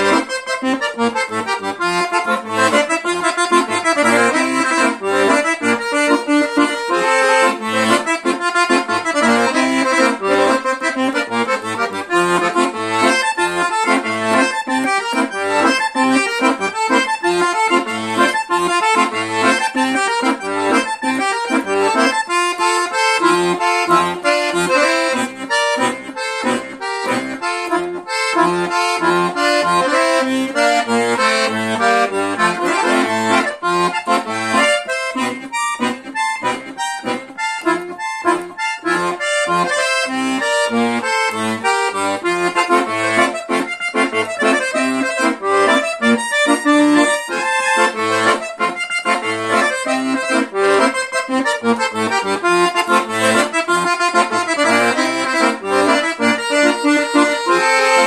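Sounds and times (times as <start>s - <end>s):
piano accordion playing: 0.0s - 58.0s.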